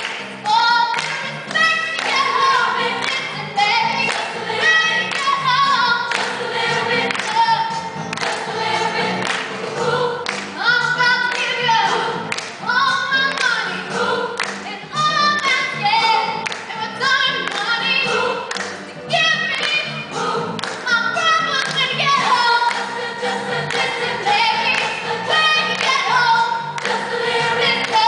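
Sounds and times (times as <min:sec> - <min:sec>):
choir singing: 0:02.0 - 0:10.7, 0:13.6 - 0:14.4, 0:17.9 - 0:18.5, 0:20.0 - 0:20.9, 0:22.2 - 0:28.0.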